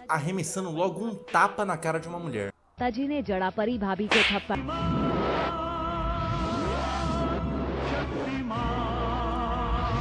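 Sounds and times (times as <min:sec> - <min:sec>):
woman talking: 0:02.8 - 0:04.6
sharp slap sound effect: 0:04.1 - 0:04.6.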